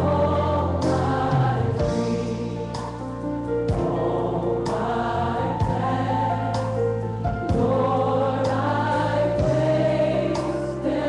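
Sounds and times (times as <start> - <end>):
gospel choir singing: 0.0 - 11.0
sustained instrumental chords: 0.0 - 11.0.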